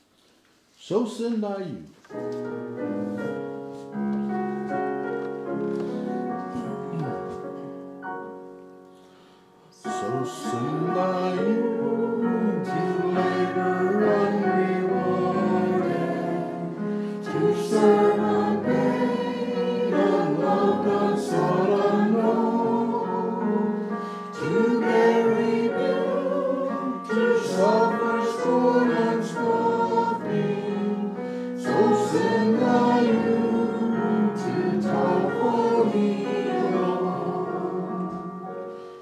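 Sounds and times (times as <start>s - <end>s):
choir singing a hymn: 5.8s - 7.4s, 9.7s - 39.0s.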